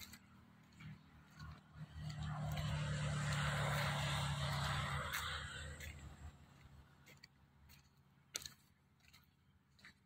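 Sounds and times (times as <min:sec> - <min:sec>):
vehicle passing: 0:00.0 - 0:10.0.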